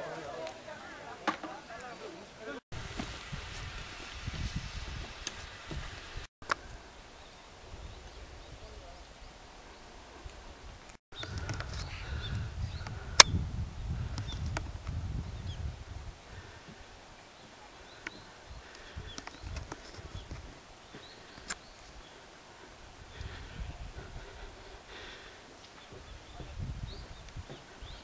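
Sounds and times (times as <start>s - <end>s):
wind noise on microphone: 2.7s - 9.4s, 10.0s - 17.0s, 18.4s - 20.6s, 22.8s - 25.3s, 25.9s - 28.0s.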